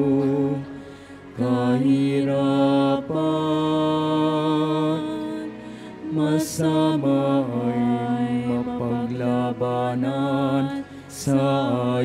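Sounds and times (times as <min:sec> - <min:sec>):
person singing a hymn: 0:00.0 - 0:12.0
sustained accompaniment notes: 0:00.0 - 0:12.0.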